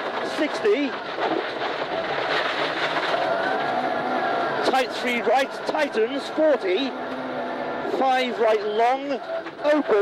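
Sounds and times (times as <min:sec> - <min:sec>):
clicks and rattles: 0:00.0 - 0:03.8
car engine running hard: 0:00.0 - 0:10.0
tyre and gravel noise: 0:00.0 - 0:10.0.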